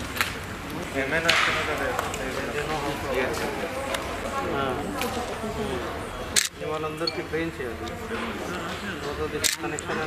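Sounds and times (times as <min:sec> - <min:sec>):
people talking: 0:00.7 - 0:10.0.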